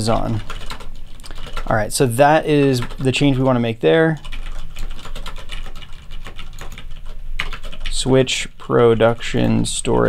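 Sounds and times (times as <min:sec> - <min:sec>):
keyboard typing: 0:00.0 - 0:08.1.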